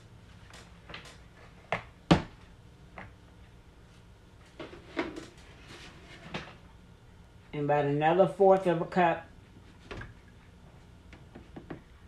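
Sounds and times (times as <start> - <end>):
containers knocking on a table: 11.3 - 11.9.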